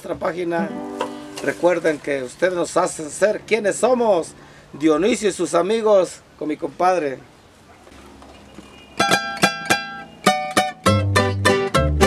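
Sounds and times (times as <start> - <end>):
man speaking: 0.0 - 0.8, 1.4 - 7.3
faint background noise: 0.0 - 10.9
music: 0.6 - 1.6, 9.0 - 12.0.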